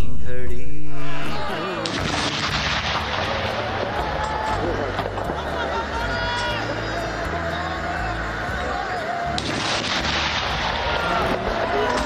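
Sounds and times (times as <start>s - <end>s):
artillery firing with rolling echo: 1.8s - 4.0s, 9.4s - 12.0s.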